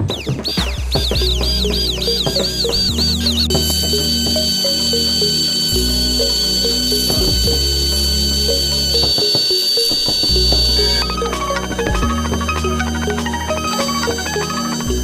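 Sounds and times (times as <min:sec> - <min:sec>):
electronic music: 0:00.0 - 0:15.0
high steady tone: 0:00.6 - 0:15.0.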